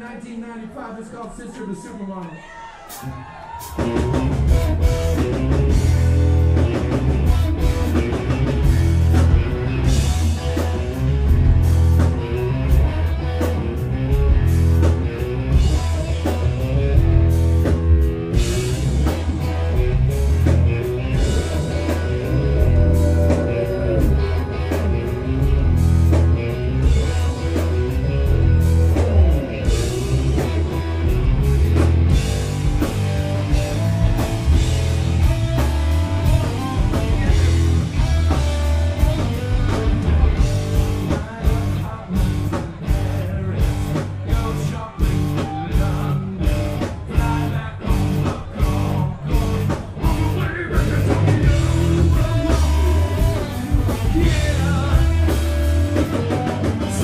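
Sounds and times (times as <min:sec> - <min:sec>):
live rock band: 0:02.7 - 0:57.0
electric guitar: 0:03.0 - 0:57.0.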